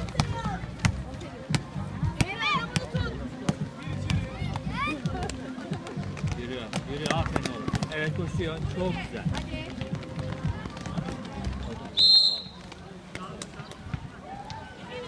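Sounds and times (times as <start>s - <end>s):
basketball bouncing on hard court: 0.0s - 4.7s
players' voices: 0.0s - 15.0s.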